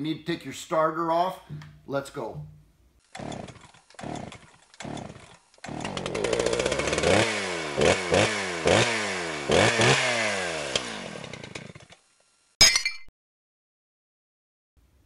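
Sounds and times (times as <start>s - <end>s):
small gasoline engine revving: 3.0s - 12.0s
small engine pull-start cranking: 3.0s - 12.3s.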